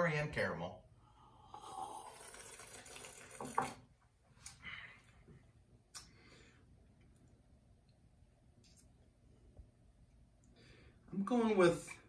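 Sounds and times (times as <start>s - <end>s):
person slurping coffee: 1.4s - 3.8s
faint breath: 6.1s - 6.8s.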